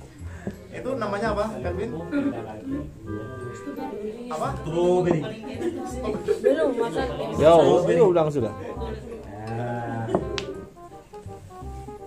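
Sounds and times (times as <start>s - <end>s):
faint music: 0.0s - 12.0s
billiard balls clicking: 10.1s - 11.3s.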